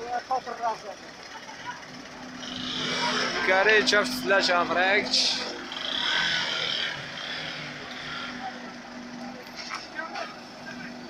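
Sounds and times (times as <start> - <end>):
onlookers' voices: 0.0 - 5.8, 7.7 - 11.0.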